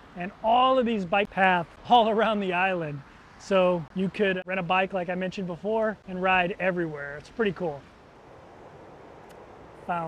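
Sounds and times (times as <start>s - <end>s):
wind: 0.0s - 10.0s.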